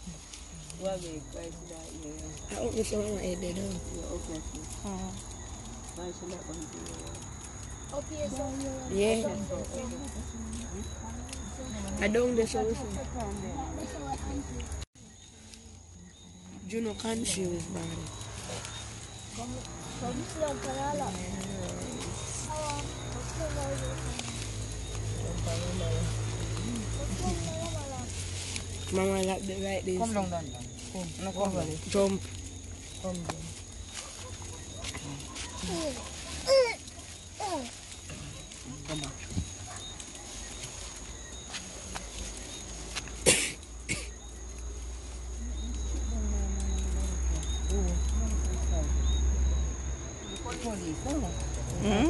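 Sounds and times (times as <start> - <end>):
people talking quietly: 0.0 - 52.0
person coughing: 43.2 - 44.1.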